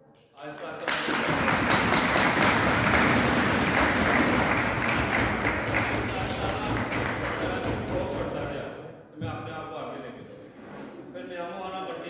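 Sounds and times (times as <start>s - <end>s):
audience applauding: 0.4s - 7.9s.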